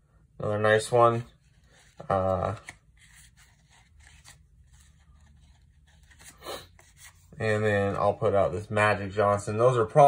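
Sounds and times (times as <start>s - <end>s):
trading cards rustling: 0.8s - 8.2s.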